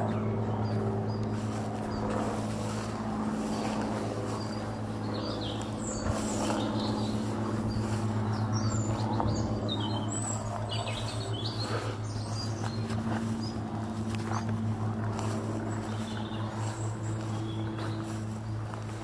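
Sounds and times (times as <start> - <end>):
low mechanical hum: 0.0 - 19.0
small birds chirping: 0.0 - 19.0.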